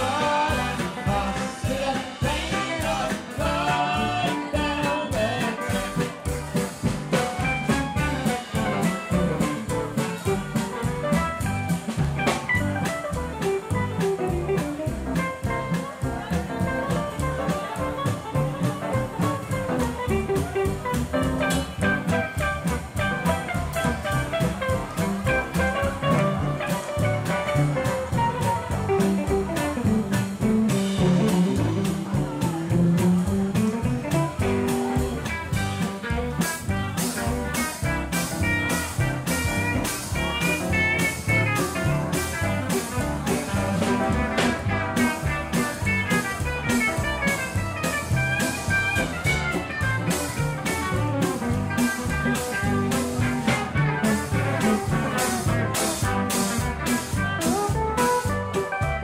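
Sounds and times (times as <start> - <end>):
drum beat: 0.0 - 59.0
upright bass: 0.0 - 59.0.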